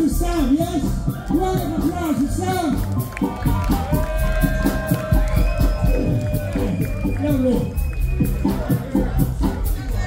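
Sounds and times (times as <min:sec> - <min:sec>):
bass: 0:00.0 - 0:10.0
ska band playing: 0:00.0 - 0:10.0
steady drum beat: 0:00.0 - 0:10.0.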